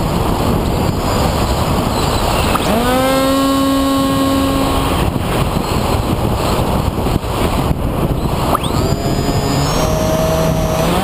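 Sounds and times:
airflow rushing over camera: 0:00.0 - 0:11.0
electric motor and propeller whine: 0:00.0 - 0:11.0.

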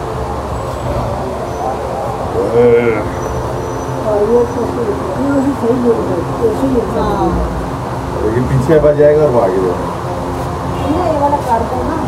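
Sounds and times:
faint indistinct voices: 0:00.0 - 0:12.0
traffic rumble: 0:00.0 - 0:12.0.

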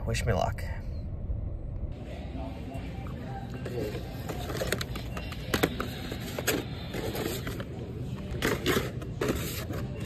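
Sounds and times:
store background hum: 0:00.0 - 0:10.0.

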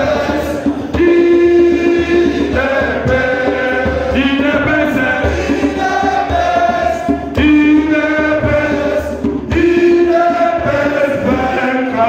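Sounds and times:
crowd singing an anthem: 0:00.0 - 0:12.0.

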